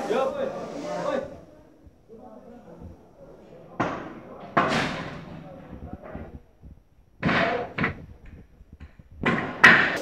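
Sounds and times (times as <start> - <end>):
metal material rattling and banging: 3.8 - 6.4.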